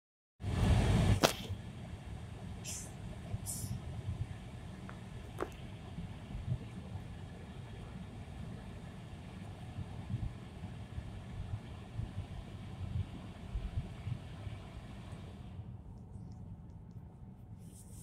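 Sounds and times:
car rumble inside cabin: 2.0s - 15.7s
low bumps from road: 4.2s - 6.8s.

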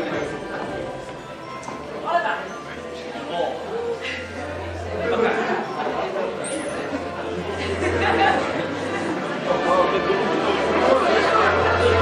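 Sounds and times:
audience murmur: 0.0s - 12.0s.

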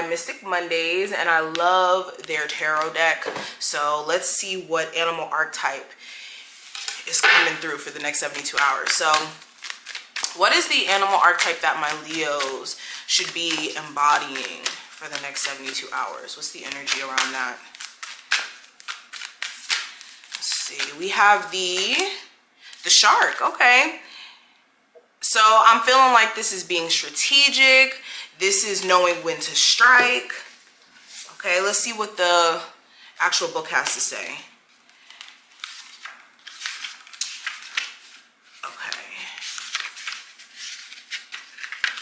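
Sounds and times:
paper pages flipping: 6.5s - 21.9s, 34.7s - 42.0s
cards being shuffled: 6.6s - 21.0s, 34.8s - 42.0s.

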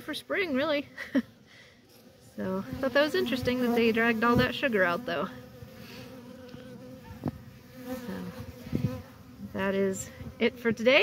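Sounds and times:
bees buzzing: 1.9s - 11.0s.

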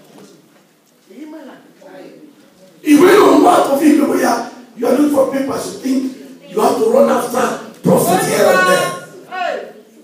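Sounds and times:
man preaching into microphone: 2.8s - 9.7s.

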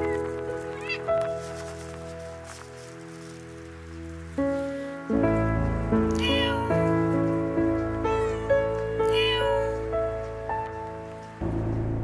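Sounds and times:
cat meowing: 0.0s - 1.3s
background music sustained notes: 0.0s - 12.0s.

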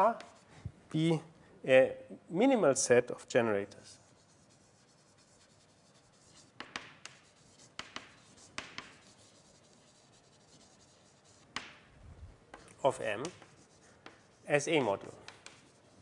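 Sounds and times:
writing strokes on a board: 0.0s - 0.5s, 3.8s - 11.9s, 12.5s - 16.0s
sharp taps on a board: 6.6s - 7.2s, 7.8s - 9.0s, 11.5s - 11.8s.

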